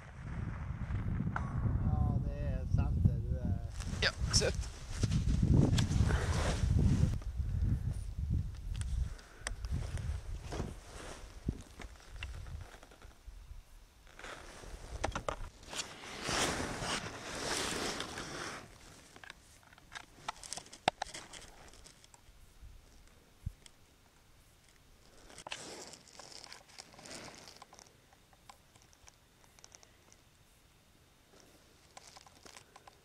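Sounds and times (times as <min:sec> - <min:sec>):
rustling and handling noises: 0:03.6 - 0:07.2, 0:08.0 - 0:13.2, 0:14.0 - 0:30.7, 0:31.3 - 0:33.0.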